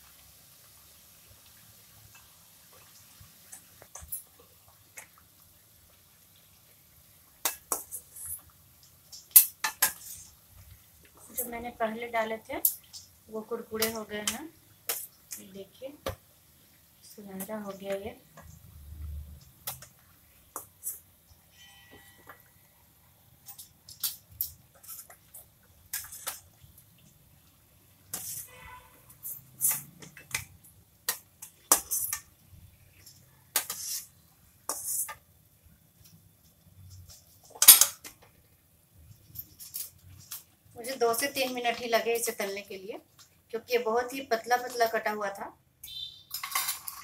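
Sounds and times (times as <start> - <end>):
metal spatula scraping a pan: 9.3 - 10.4, 20.8 - 22.5, 24.7 - 25.3, 25.9 - 26.5, 28.1 - 30.4, 31.4 - 32.3, 33.0 - 35.2.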